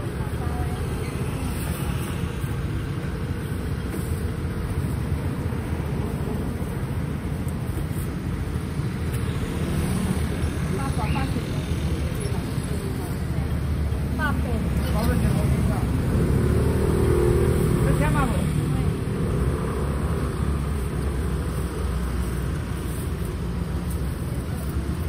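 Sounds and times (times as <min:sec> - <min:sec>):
scooters and cars passing: 0:00.0 - 0:25.0.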